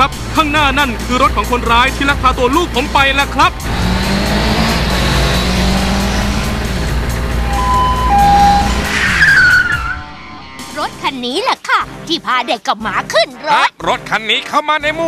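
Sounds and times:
car engine running hard: 0.0s - 9.9s
falling tyre screech: 4.5s - 10.8s
brief steady beeps: 7.4s - 10.0s.

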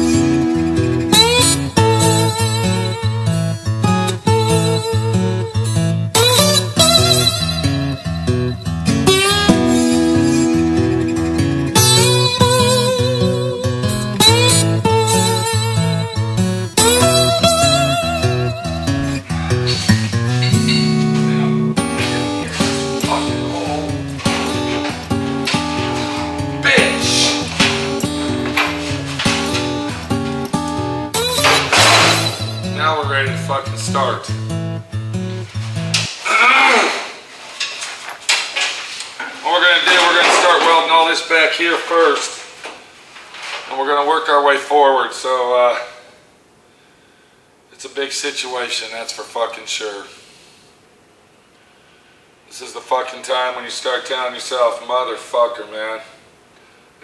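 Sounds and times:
guitar music with bass line: 0.0s - 36.1s
man speaking: 21.2s - 24.8s, 26.6s - 27.6s, 32.6s - 34.4s, 39.4s - 42.4s.

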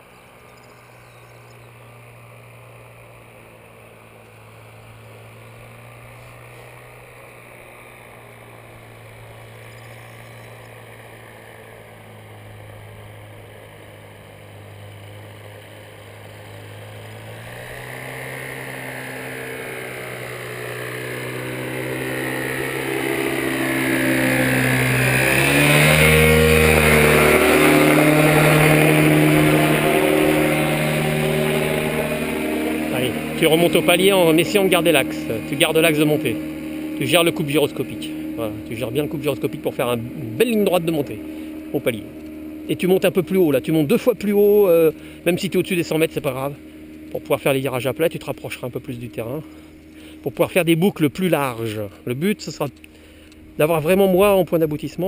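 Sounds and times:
paramotor engine droning: 0.0s - 55.0s.

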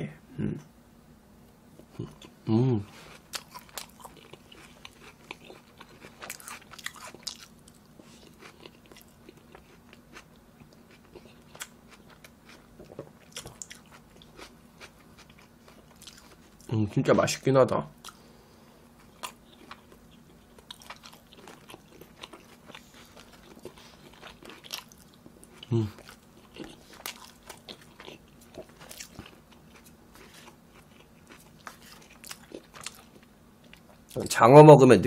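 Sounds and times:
person humming: 1.9s - 3.0s, 25.7s - 26.0s
mouth chewing meat: 1.9s - 16.7s, 19.0s - 34.2s.

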